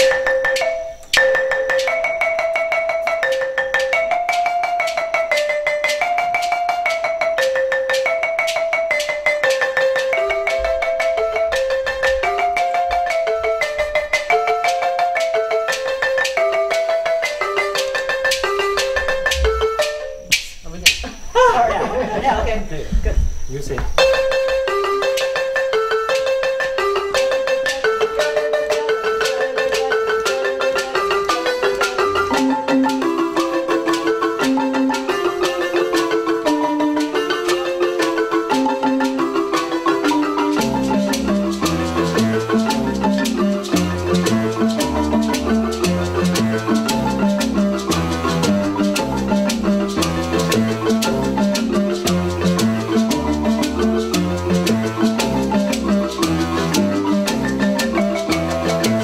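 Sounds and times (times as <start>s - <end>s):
deep bass marimba notes: 0.0s - 21.4s, 23.9s - 59.0s
marimba ensemble playing: 0.0s - 22.4s, 24.0s - 59.0s.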